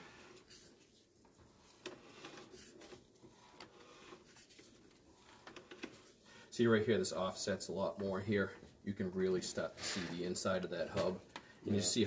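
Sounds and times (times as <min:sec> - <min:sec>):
faint irregular clicks: 0:01.7 - 0:06.2.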